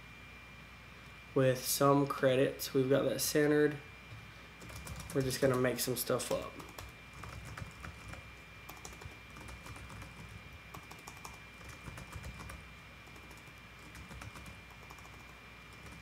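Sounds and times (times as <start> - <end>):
faint typing on a keyboard: 4.6 - 16.0.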